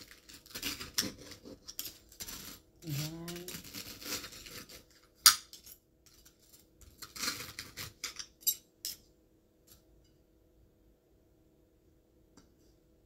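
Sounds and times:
knife sawing and scraping plate: 0.0 - 5.1, 6.9 - 8.1
person humming: 2.8 - 3.6.

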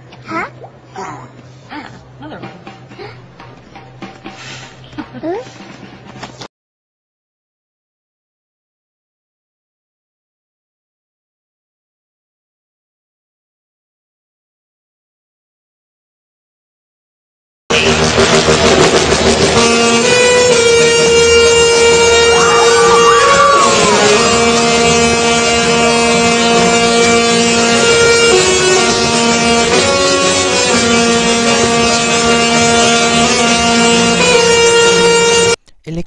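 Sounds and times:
singing tesla coil tune: 19.6 - 35.6.

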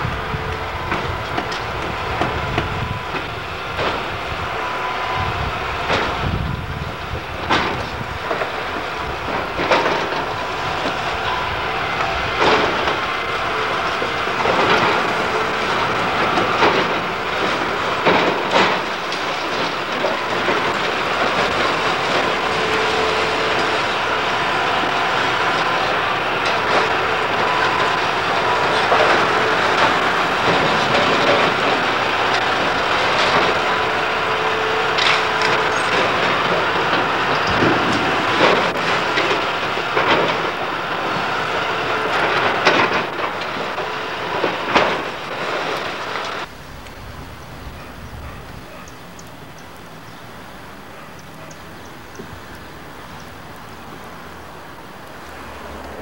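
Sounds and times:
crunching and scraping masonry: 0.0 - 47.0
excavator engine running: 0.0 - 56.0
falling debris crashing: 12.0 - 46.5.

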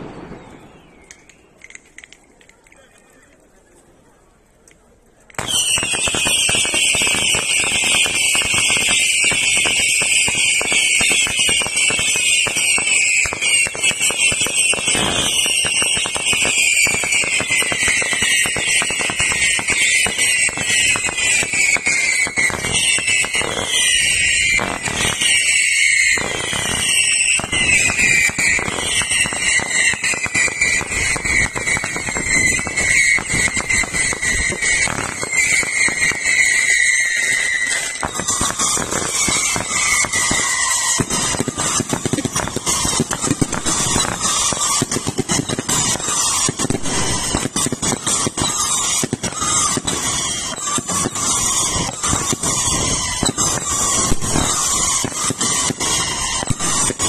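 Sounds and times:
fireworks crackling and banging: 0.0 - 57.0
whistling fireworks: 0.0 - 57.0.

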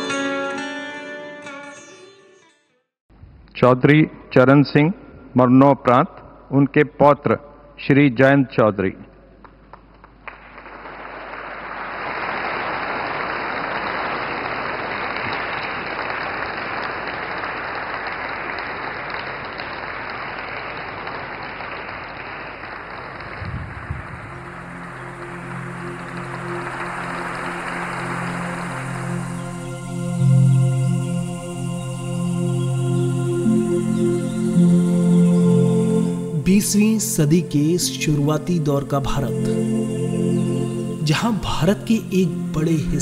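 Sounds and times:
audience applauding: 9.5 - 30.6
soft low music: 23.7 - 43.0.

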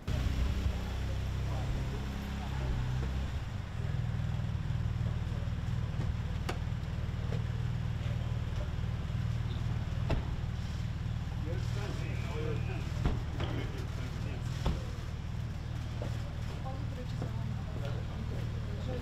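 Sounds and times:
car engine idling: 0.0 - 19.0
faint voices: 0.0 - 19.0.

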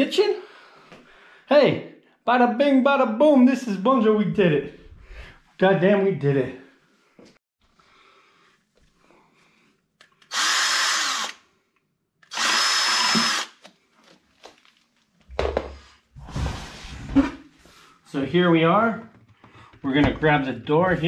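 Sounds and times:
cordless drill whining: 10.2 - 11.4, 12.2 - 13.7.

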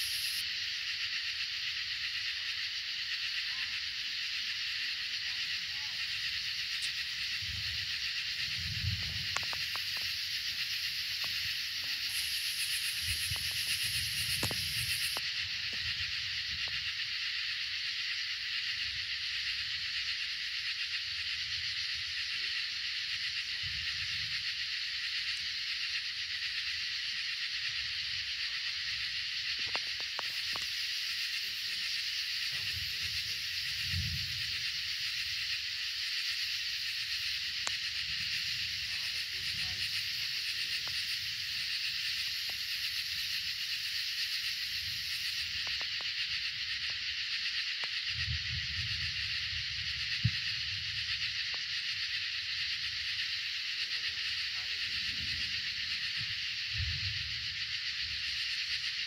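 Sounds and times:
night insects chorus: 0.0 - 59.0.

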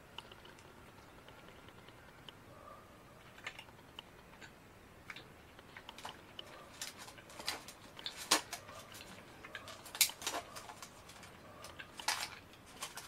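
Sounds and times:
person chewing candy: 3.2 - 13.0.

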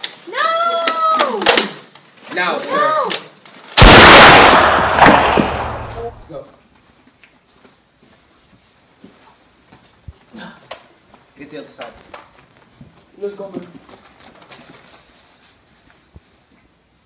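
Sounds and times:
loud gunshot: 3.8 - 6.3.

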